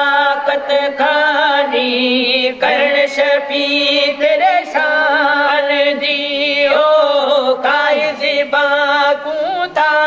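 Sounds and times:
men singing devotional chant: 0:00.0 - 0:10.0.

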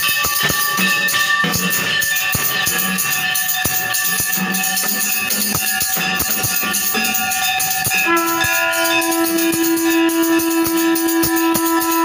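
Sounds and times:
brass hand bell ringing: 0:00.0 - 0:12.0
conch shell blast: 0:00.0 - 0:12.0
drum strikes: 0:00.0 - 0:12.0.

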